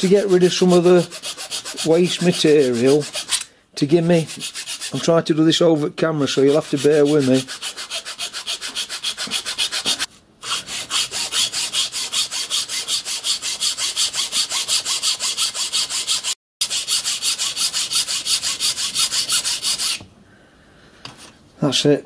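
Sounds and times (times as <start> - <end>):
file rasping on wood: 0.0 - 3.4, 4.2 - 5.1, 6.4 - 20.0.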